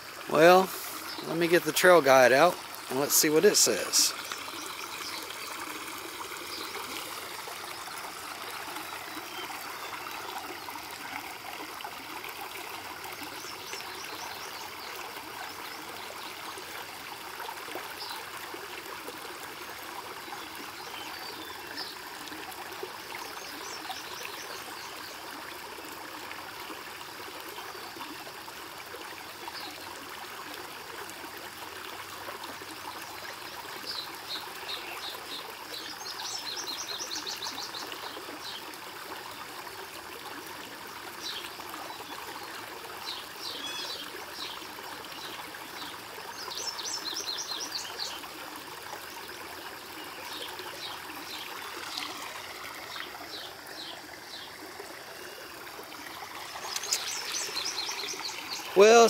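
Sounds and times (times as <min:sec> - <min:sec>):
creek water running: 0:00.0 - 0:59.0
songbird singing: 0:00.3 - 0:05.8, 0:06.4 - 0:10.9, 0:13.1 - 0:16.5, 0:33.8 - 0:38.7, 0:41.2 - 0:48.3, 0:49.9 - 0:54.6, 0:56.0 - 0:59.0.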